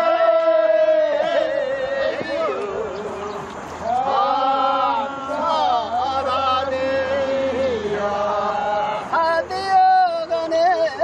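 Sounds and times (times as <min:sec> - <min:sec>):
chanted singing: 0:00.0 - 0:11.0.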